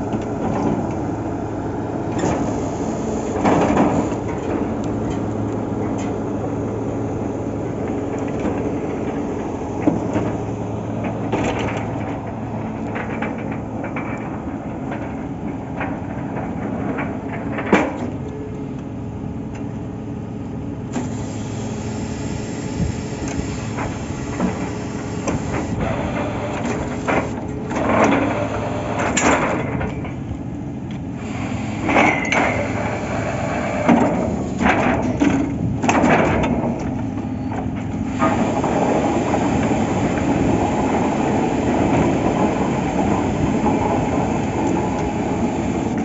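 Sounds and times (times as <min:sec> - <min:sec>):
drilling rig engine running: 0:00.0 - 0:15.7, 0:19.0 - 0:46.0.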